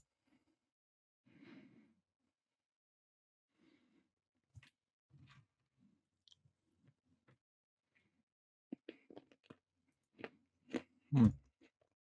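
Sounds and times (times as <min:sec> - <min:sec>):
person chewing crunchy food: 0:08.7 - 0:11.0.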